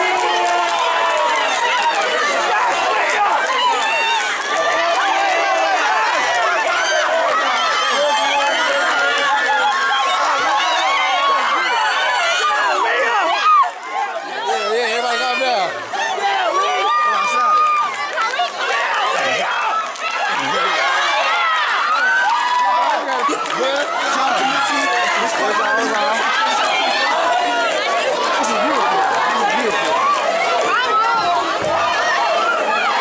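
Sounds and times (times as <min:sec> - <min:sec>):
crowd screaming and cheering: 0:00.0 - 0:33.0.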